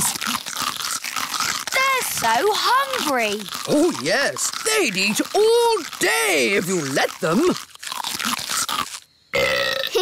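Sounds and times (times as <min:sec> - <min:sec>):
crunchy chewing: 0:00.0 - 0:10.0
long loud burp: 0:07.1 - 0:10.0.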